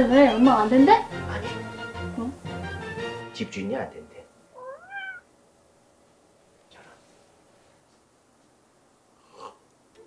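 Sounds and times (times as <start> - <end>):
cat meowing: 4.5 - 5.3.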